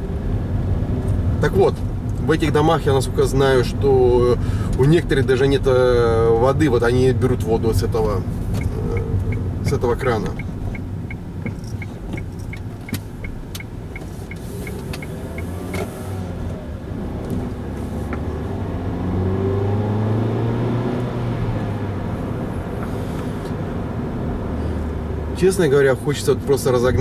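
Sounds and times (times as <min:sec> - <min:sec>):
car engine hum: 0:00.0 - 0:27.0
turn signal ticking: 0:06.3 - 0:18.8, 0:20.4 - 0:27.0.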